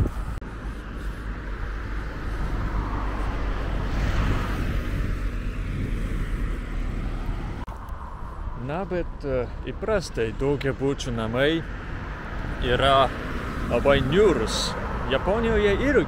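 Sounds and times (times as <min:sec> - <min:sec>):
car passing: 0:00.0 - 0:16.0
low traffic rumble: 0:00.0 - 0:16.0.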